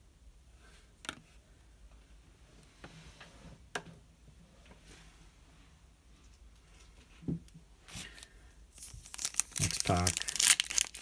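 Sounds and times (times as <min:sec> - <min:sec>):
foil wrapper crinkling and tearing: 0:08.1 - 0:11.0.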